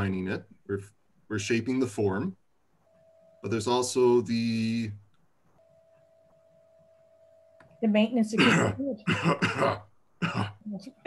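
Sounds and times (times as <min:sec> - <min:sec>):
faint steady tone: 0:00.0 - 0:11.0.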